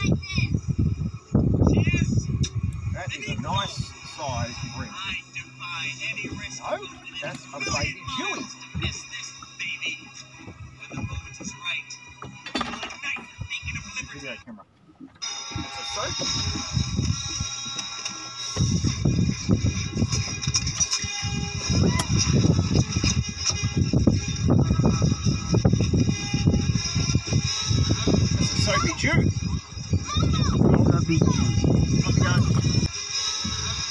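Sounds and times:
film soundtrack voices: 0:01.6 - 0:14.8.

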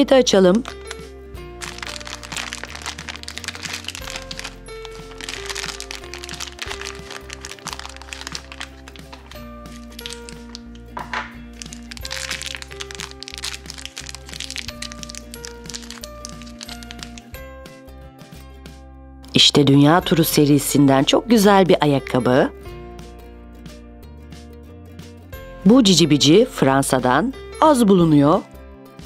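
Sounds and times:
light background music: 0:00.0 - 0:29.0
foil packet crinkling: 0:01.6 - 0:17.3.

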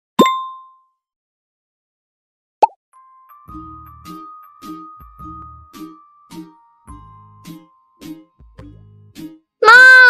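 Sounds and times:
cartoon bloop and bell ding: 0:00.2 - 0:00.8.

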